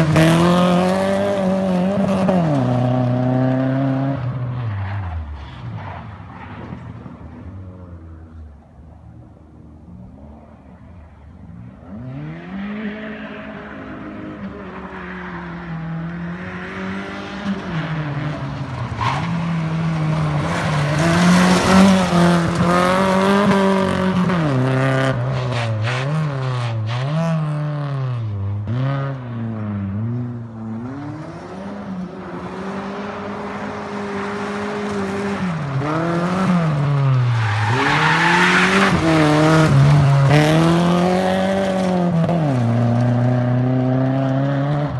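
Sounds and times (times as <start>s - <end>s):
rally car engine revving past: 0.0s - 5.8s, 11.6s - 44.9s
tyres sliding on gravel: 17.7s - 24.0s, 34.3s - 43.3s.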